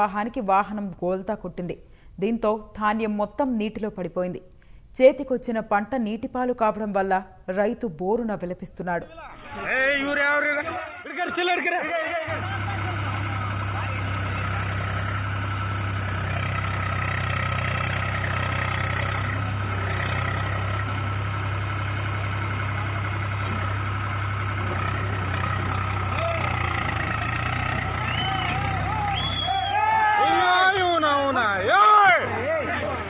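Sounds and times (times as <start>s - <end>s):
men's voices: 9.0s - 15.1s, 30.2s - 33.0s
tractor diesel engine running: 12.3s - 33.0s.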